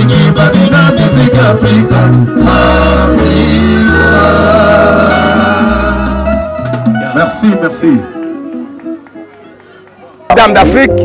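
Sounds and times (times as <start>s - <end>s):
live band held notes: 0.0s - 11.0s.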